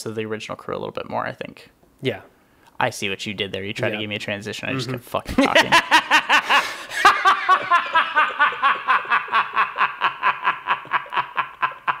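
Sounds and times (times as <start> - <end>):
man laughing: 4.7 - 12.0.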